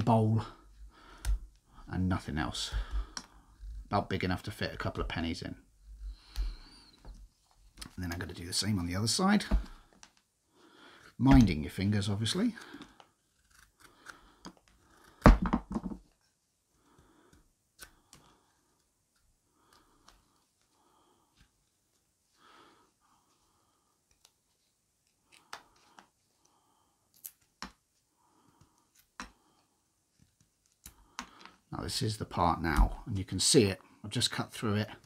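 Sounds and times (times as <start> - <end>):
knife cutting wood: 12.6 - 15.2.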